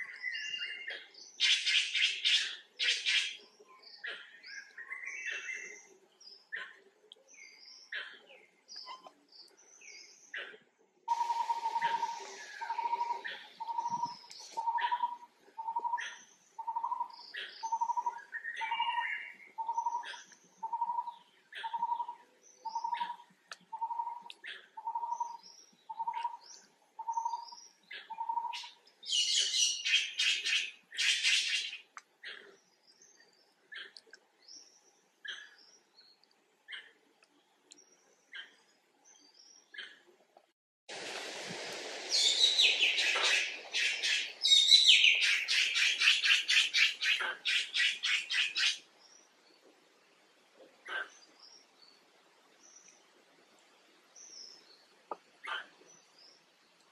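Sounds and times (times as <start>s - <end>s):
birds chirping: 0.0s - 40.1s, 42.1s - 49.7s
bird repeating low note: 11.1s - 16.0s.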